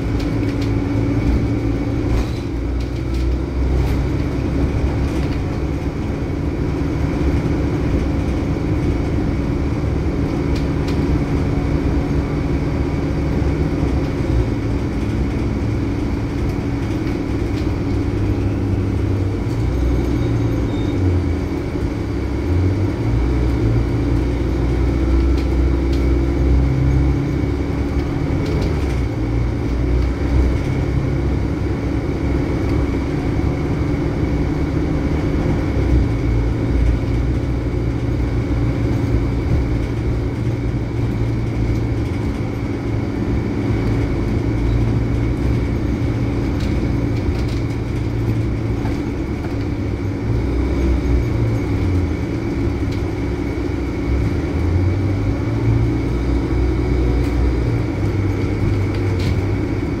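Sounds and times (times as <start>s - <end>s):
bus diesel engine droning: 0.0s - 60.0s
road noise: 0.0s - 60.0s.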